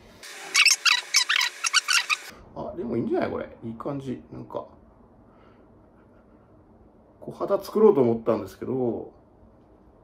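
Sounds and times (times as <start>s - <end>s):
short high-pitched squeaks: 0.5s - 2.3s.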